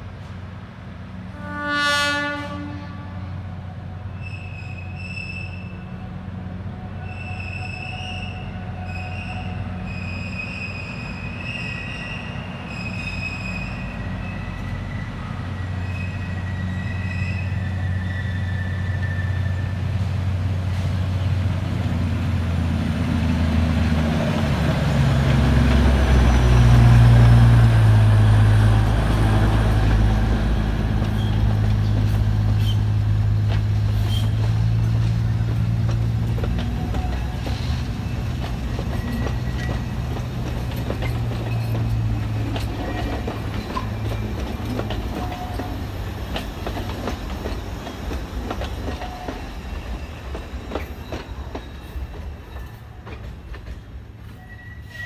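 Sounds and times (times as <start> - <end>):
diesel locomotive engine passing: 0.0 - 55.0
train wheels clacking over rail joints: 30.9 - 54.0.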